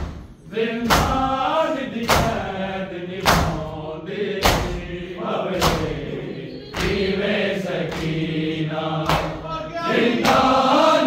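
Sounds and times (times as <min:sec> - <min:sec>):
chest-beating slaps: 0:00.0 - 0:01.3, 0:02.0 - 0:02.5, 0:03.2 - 0:03.7, 0:04.4 - 0:04.9, 0:05.5 - 0:06.1, 0:06.7 - 0:07.0, 0:07.8 - 0:08.3, 0:09.0 - 0:09.5
men chanting in unison: 0:00.5 - 0:11.0.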